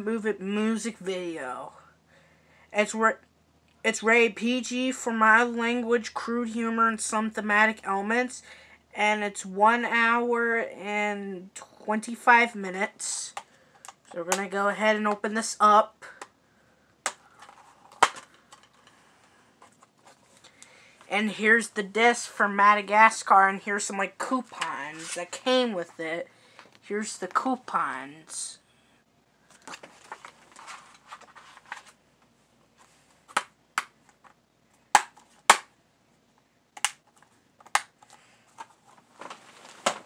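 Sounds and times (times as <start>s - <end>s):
plastic case snapping open: 17.9s - 18.3s
paper inserts rustling: 29.5s - 32.0s
light plastic rustling: 29.5s - 33.4s, 38.0s - 40.0s
plastic case clicks and snaps: 36.8s - 38.0s.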